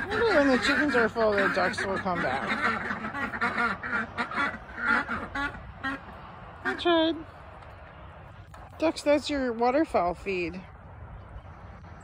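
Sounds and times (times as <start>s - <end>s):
ducks quacking: 0.0s - 7.2s.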